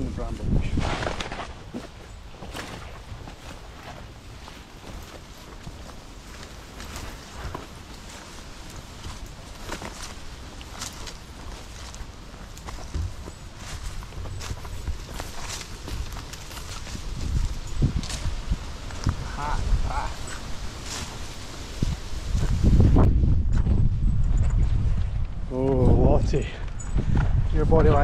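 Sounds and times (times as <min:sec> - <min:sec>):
wind rumble on microphone: 0:00.0 - 0:01.4, 0:02.6 - 0:28.0
footsteps in dry grass and leaves: 0:00.0 - 0:28.0.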